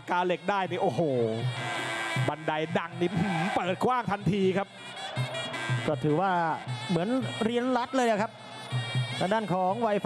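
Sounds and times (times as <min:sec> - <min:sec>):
thai oboe note: 0:00.7 - 0:10.0
commentator exclaiming: 0:02.6 - 0:04.6.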